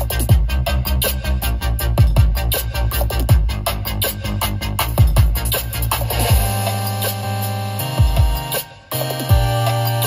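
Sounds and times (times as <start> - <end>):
music through car speakers: 0.0 - 10.0
held chords over bass note: 6.2 - 10.0.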